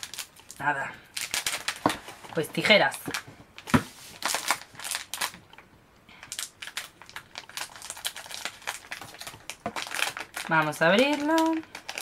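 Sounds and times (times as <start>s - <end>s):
plastic snack packet crinkling: 0.0s - 5.6s, 6.2s - 12.0s.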